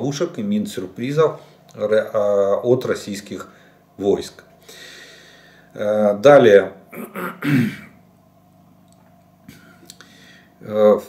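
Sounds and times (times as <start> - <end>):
man clearing his throat: 6.9 - 8.0.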